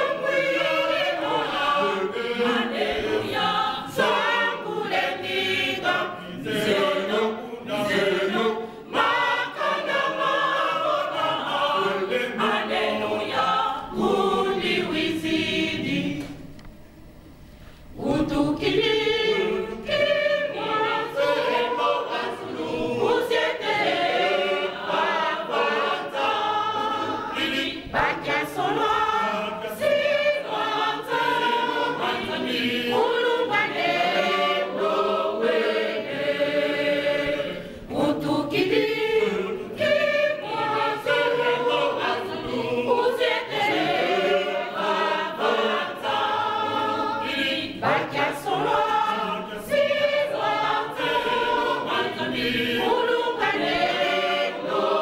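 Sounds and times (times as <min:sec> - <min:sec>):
congregation singing a hymn: 0:00.0 - 0:16.7, 0:17.8 - 0:55.0.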